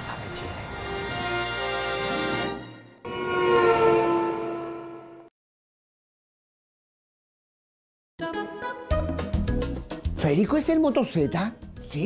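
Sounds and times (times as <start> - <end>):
horn-like chord ident sting: 1.2 - 5.3.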